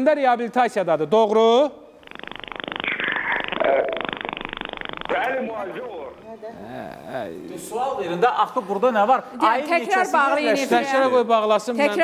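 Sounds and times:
pulsing buzzing telephone distortion: 1.9s - 7.2s.

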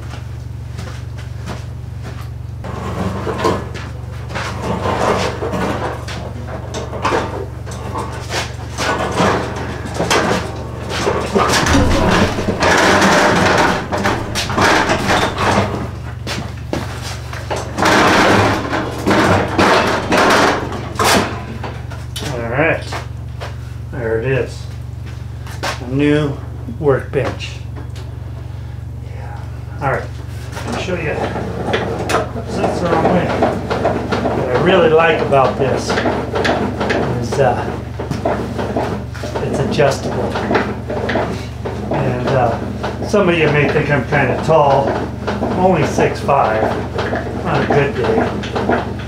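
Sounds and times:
knocks rattles and scraping: 2.6s - 22.2s, 30.4s - 49.0s
work table casters rolling: 2.7s - 21.6s, 30.6s - 49.0s
steady low hum: 9.6s - 31.5s.

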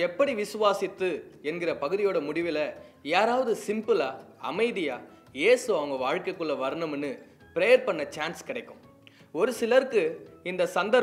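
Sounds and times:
man speaking: 0.0s - 8.8s.

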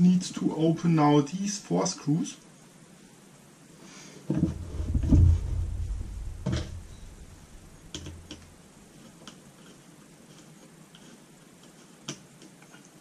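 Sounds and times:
low rumbling knock: 4.4s - 8.2s.

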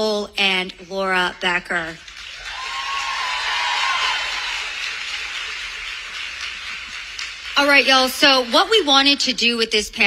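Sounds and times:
audience applauding: 2.0s - 9.5s.

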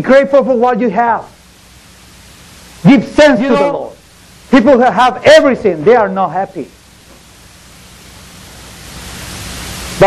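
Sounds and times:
steady room noise hiss: 0.0s - 10.0s.

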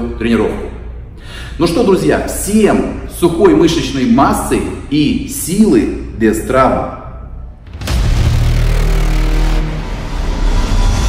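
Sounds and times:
deep rumble: 7.2s - 11.0s.

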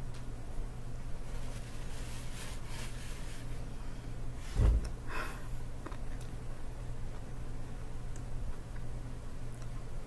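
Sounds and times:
low thump: 4.6s - 4.9s.

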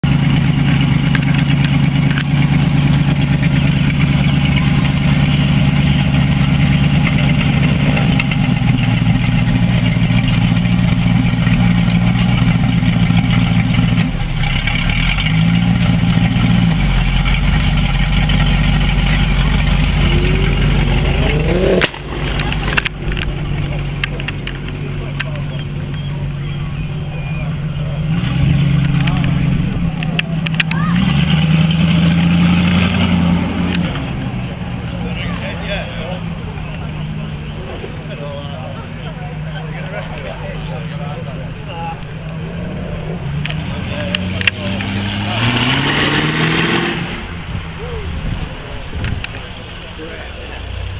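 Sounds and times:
car engines idling and revving: 0.0s - 50.9s.

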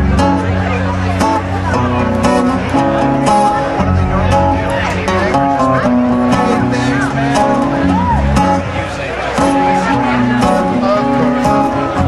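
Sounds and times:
live band playing instrumental: 0.0s - 12.0s.

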